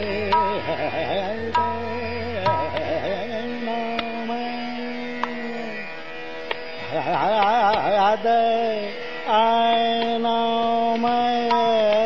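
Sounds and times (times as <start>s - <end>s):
light tabla: 0.0s - 5.7s, 6.4s - 12.0s
man singing a long note: 0.0s - 5.9s, 6.9s - 12.0s
harmonium: 0.0s - 12.0s.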